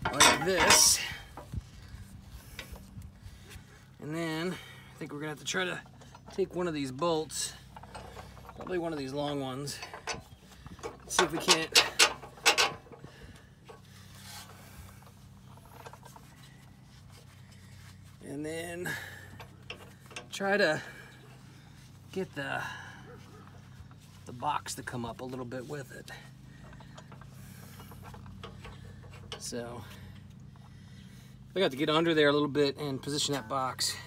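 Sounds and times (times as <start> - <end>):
steel bolt scraping through holes: 0.0 - 1.1, 10.8 - 13.1
metal bolt clicking and scraping: 0.0 - 1.5, 5.8 - 13.1
low steady hum: 0.0 - 34.0.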